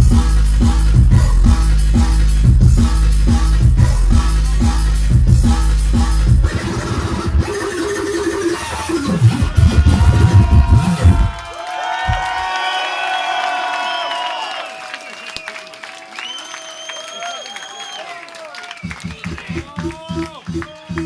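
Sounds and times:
drum and bass music: 0:00.0 - 0:11.5, 0:18.8 - 0:21.0
sliding synth notes: 0:06.4 - 0:11.4.

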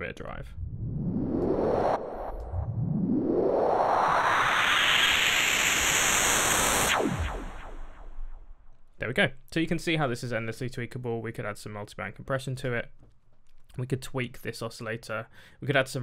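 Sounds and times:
synthesized riser sweep: 0:00.4 - 0:08.8
quick falling tone: 0:00.5 - 0:08.7.

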